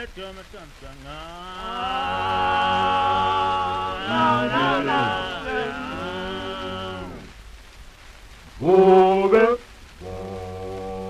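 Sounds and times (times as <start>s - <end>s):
sliding pitched tones: 1.6s - 7.4s.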